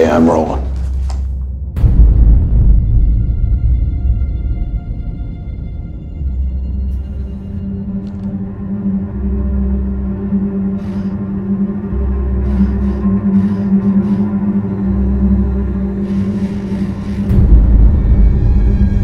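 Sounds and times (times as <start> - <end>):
low drone: 0.6 - 19.0
deep bass pulse: 1.4 - 19.0.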